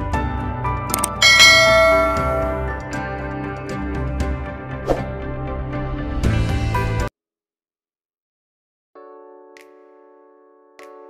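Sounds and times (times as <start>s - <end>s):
bell-like chime: 1.0s - 2.9s
sustained music tones: 1.0s - 3.0s.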